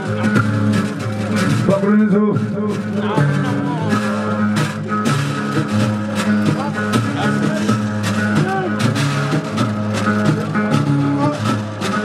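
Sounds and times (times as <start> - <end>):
sharp regular strikes: 0.0 - 12.0.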